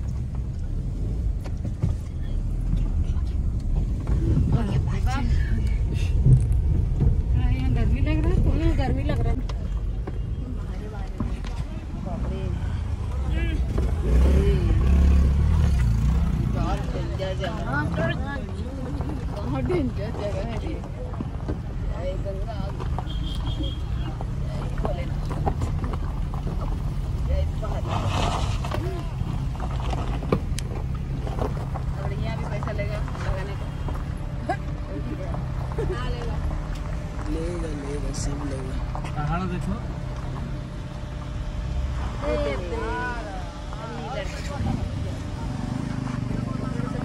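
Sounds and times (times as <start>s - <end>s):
car rumbling on dirt road: 0.0s - 47.0s
voices talking: 30.4s - 47.0s.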